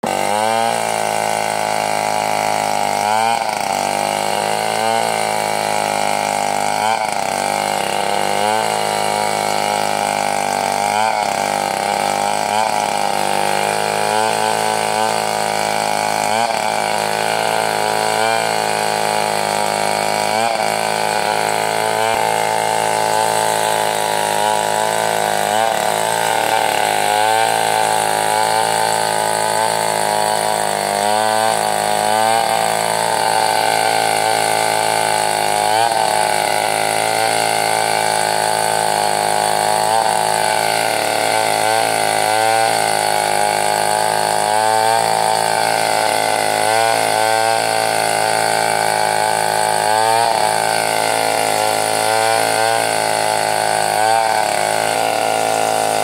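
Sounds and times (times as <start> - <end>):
chainsaw cutting log: 0.0 - 56.0.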